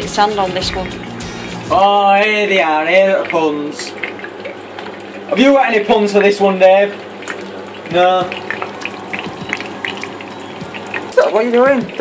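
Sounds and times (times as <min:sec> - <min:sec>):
steak sizzling in hot oil: 0:00.0 - 0:12.0.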